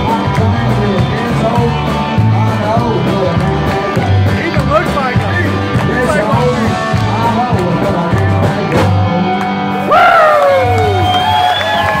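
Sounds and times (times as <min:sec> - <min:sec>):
electric guitar: 0:00.0 - 0:12.0
live rock band playing: 0:00.0 - 0:12.0
crowd cheering: 0:09.4 - 0:12.0.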